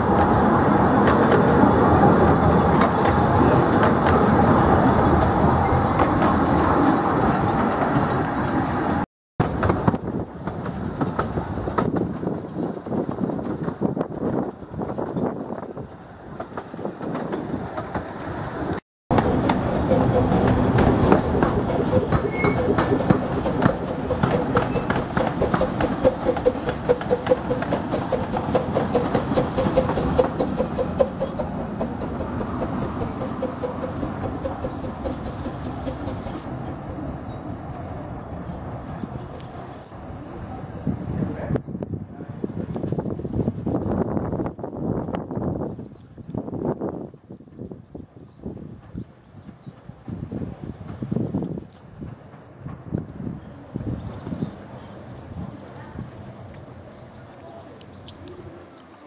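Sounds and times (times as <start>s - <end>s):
clickety-clack of train wheels: 0.0s - 39.9s, 47.4s - 55.5s
miniature train running: 19.2s - 39.4s.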